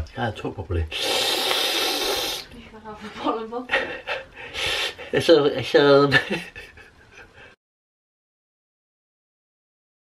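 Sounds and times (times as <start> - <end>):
loud steady hiss: 0.8 - 2.5, 4.2 - 5.9.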